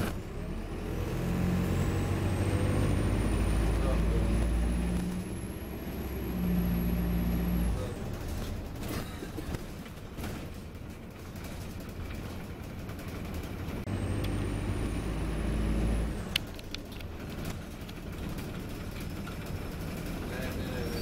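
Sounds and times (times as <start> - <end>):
bus engine and road drone: 0.0 - 21.0
rising engine whine: 0.1 - 8.2, 13.8 - 16.8.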